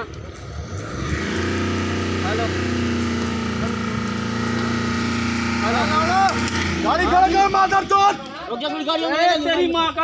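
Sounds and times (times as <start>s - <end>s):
vehicle engine running: 0.0s - 9.0s.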